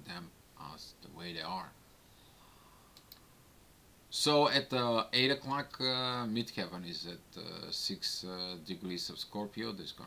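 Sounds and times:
faint short clicks: 2.9 - 3.3.

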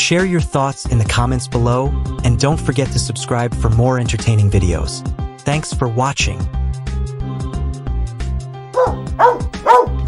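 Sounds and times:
dog barking: 8.8 - 10.0.

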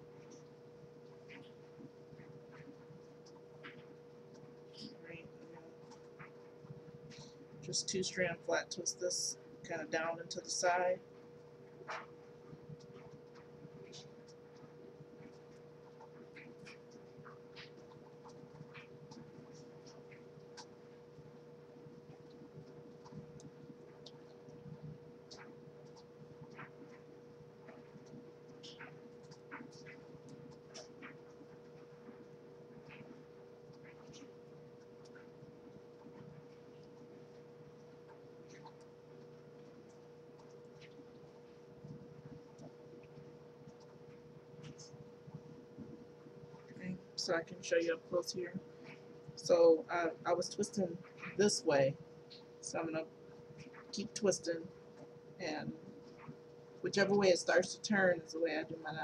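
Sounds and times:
steady electrical hum: 0.0 - 59.0.

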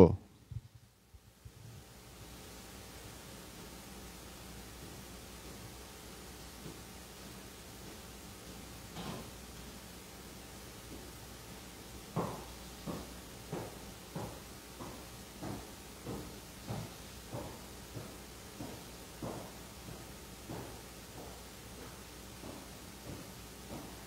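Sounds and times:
marching thumps: 12.1 - 24.0.

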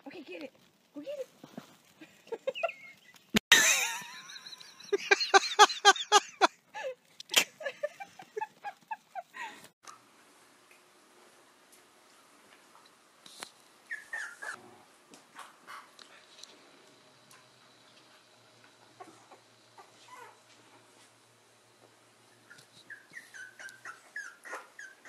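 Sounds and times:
puppies whimpering: 13.9 - 14.6, 22.4 - 25.0.

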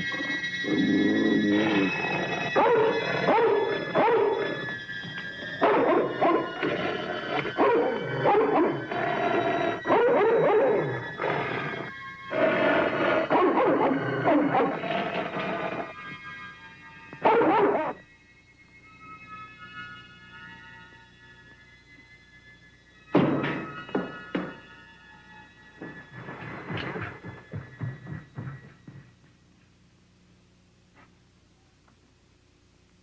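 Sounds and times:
high electronic music tones: 0.0 - 26.9
dog growling and barking: 0.6 - 4.8, 5.4 - 16.1, 17.2 - 18.0.

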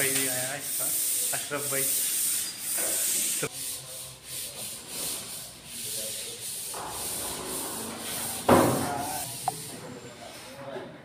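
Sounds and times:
rhythmic rubbing on plaster: 3.1 - 9.7.

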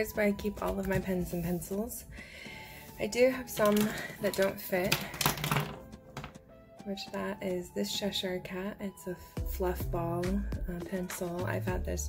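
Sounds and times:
faint background music: 0.0 - 12.0
pens rustling in pencil case: 2.9 - 6.4.

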